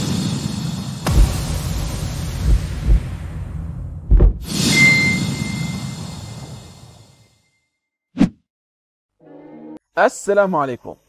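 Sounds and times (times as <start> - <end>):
low whoosh: 1.0 - 7.2
high ringing tone: 4.5 - 7.6.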